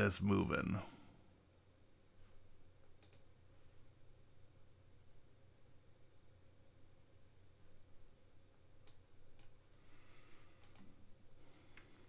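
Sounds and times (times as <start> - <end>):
computer mouse and keys clicking: 2.8 - 3.4, 8.8 - 9.7, 10.5 - 11.1.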